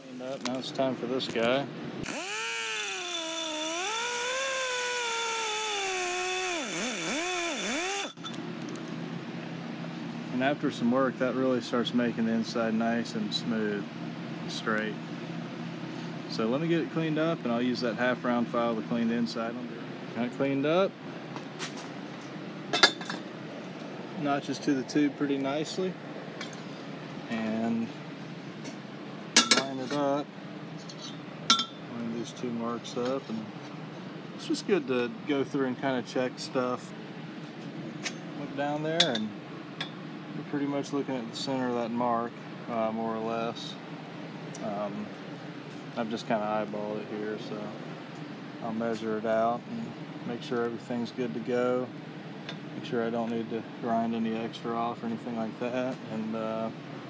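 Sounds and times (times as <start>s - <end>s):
power grinder whining on metal tube: 2.0s - 8.2s.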